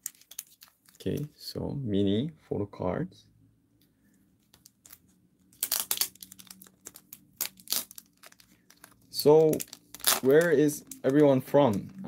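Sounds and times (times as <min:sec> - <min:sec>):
plastic wrapper crinkling and tearing: 0:00.0 - 0:01.3, 0:04.4 - 0:12.0.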